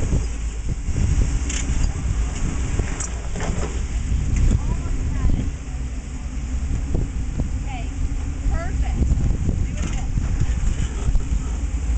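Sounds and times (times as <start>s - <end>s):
engine low rumble: 0.0s - 11.9s.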